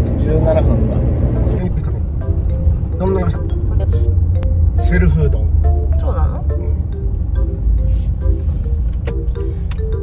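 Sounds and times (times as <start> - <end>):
background music: 0.0 - 10.0
road and engine rumble: 0.0 - 10.0.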